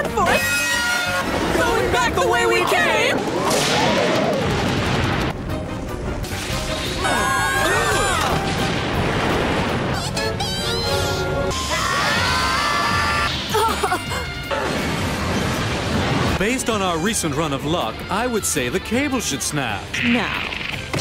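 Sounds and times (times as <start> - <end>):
dramatic cartoon music: 0.0 - 21.0
crashing and rumbling impacts: 1.2 - 7.1, 8.0 - 10.0.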